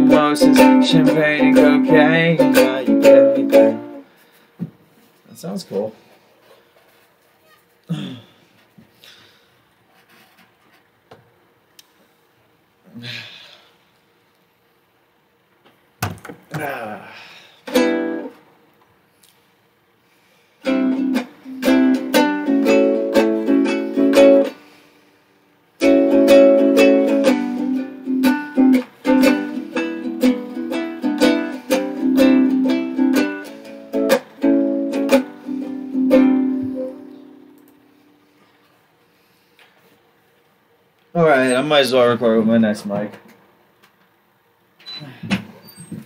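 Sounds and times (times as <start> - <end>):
guitar strumming chords: 0.0 - 4.0, 17.7 - 18.4, 20.6 - 24.6, 25.8 - 37.8.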